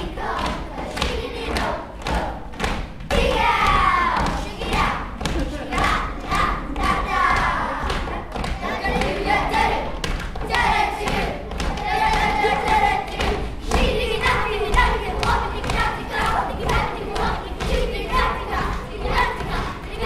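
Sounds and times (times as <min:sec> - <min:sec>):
stomping on wooden stage: 0:00.1 - 0:20.0.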